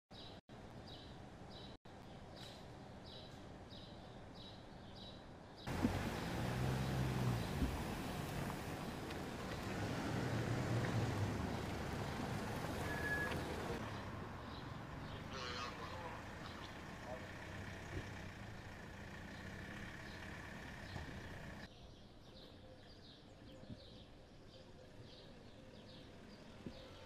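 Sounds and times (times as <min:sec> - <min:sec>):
cars driving past: 0:05.7 - 0:21.7
distant voices: 0:05.7 - 0:21.7.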